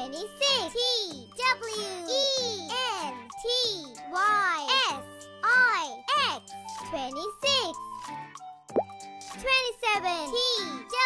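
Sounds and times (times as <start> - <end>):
light children's music: 0.0 - 11.0.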